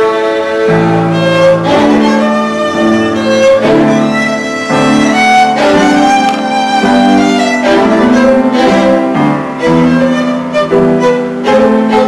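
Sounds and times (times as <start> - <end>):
solo violin melody: 0.0 - 12.0.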